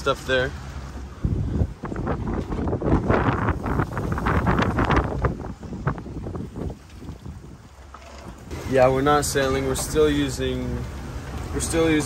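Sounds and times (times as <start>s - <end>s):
boat engine running: 0.0s - 12.0s
wind buffeting microphone: 0.0s - 12.0s.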